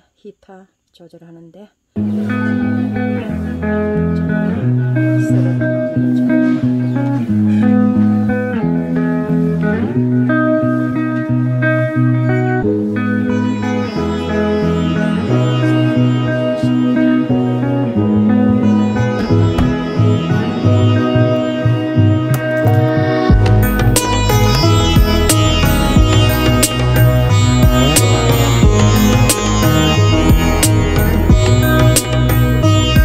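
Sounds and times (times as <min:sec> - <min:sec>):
plucked guitar music: 0:02.0 - 0:33.0.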